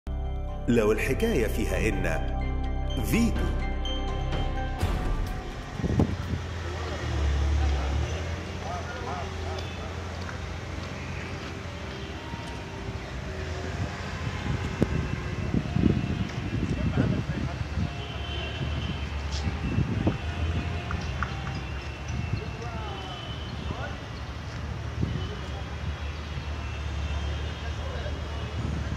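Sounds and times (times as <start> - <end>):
musical logo jingle: 0.1 - 7.0
person speaking: 0.6 - 5.2.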